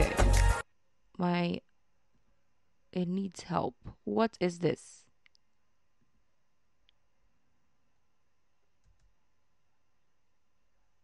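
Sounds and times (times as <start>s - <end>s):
faint mouse clicks: 8.8s - 9.2s.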